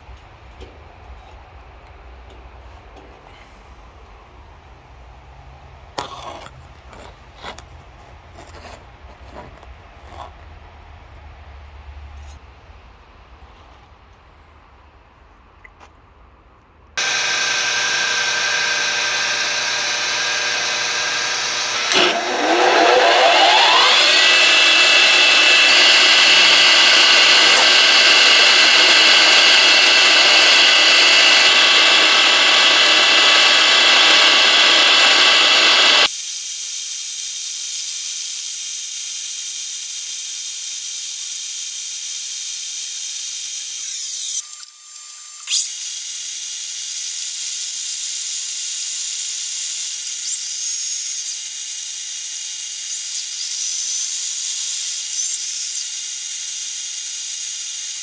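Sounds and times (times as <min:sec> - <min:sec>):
drill bit boring into steel: 0:17.0 - 0:58.0
milling machine spindle whine: 0:17.0 - 0:58.0.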